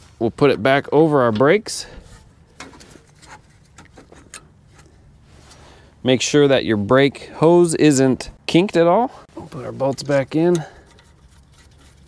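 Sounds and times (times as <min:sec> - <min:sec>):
metal parts clicking and tapping: 0:09.8 - 0:12.0.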